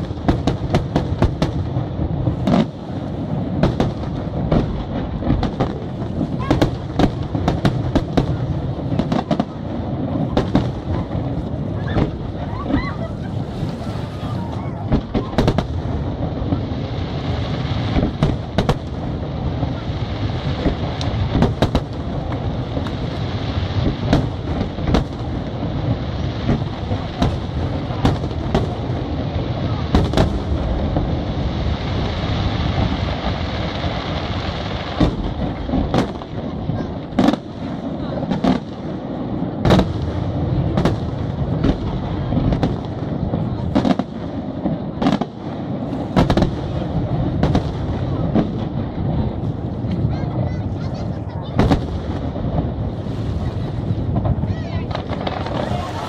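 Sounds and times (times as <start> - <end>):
firework crackling: 0.0 - 56.0.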